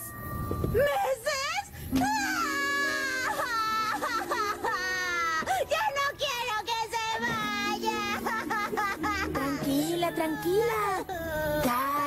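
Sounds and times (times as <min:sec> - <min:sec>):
soft music underscore: 0:01.8 - 0:12.0
woman wailing and sobbing: 0:01.9 - 0:06.4, 0:07.0 - 0:12.0.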